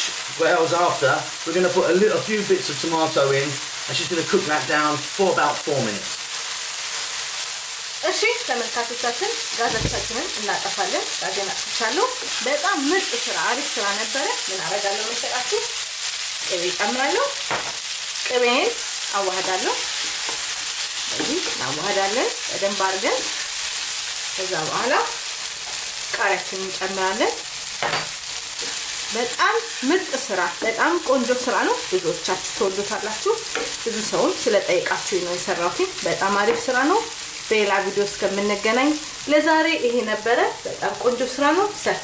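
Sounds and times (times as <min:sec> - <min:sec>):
food sizzling in a frying pan: 0:00.0 - 0:42.0.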